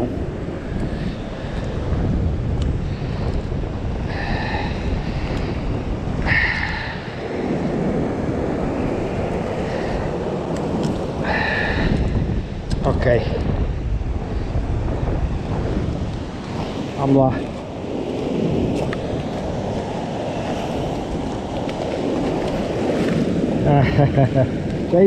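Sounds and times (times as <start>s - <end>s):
waves against rocky shore: 0.0s - 25.0s
wind buffeting microphone: 0.0s - 25.0s.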